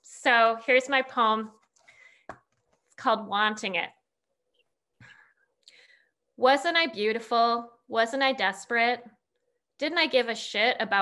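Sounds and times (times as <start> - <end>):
faint breath: 1.8 - 2.4, 5.0 - 6.2.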